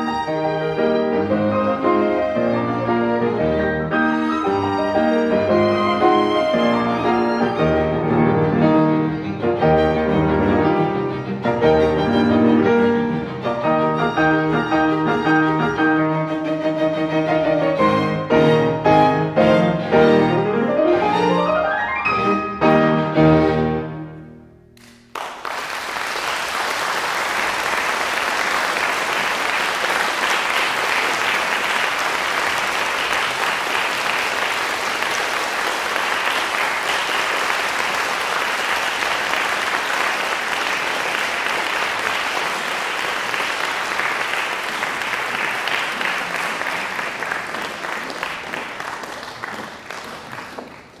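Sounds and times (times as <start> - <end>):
audience applauding: 24.8 - 51.0.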